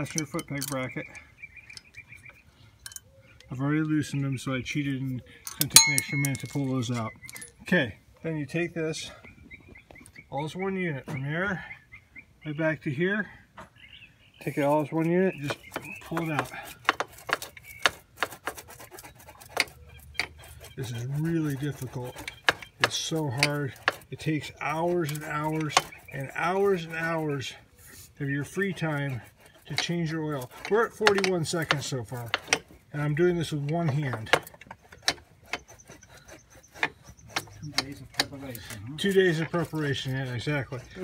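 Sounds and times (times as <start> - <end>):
sharp metallic clicks and clinks: 0.0 - 0.9, 2.8 - 3.1, 5.4 - 7.6
metal scraping: 5.5 - 7.7, 14.4 - 41.0.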